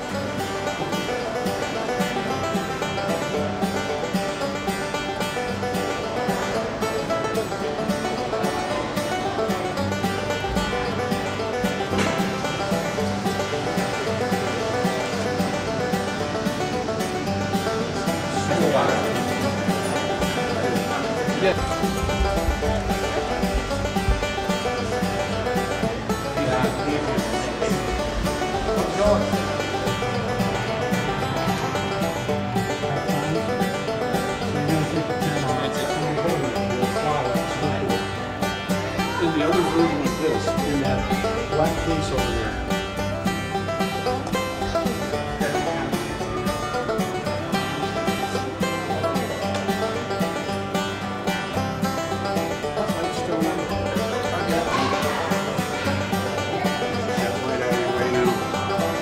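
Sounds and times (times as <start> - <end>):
acoustic bluegrass instrumental: 0.0 - 59.0.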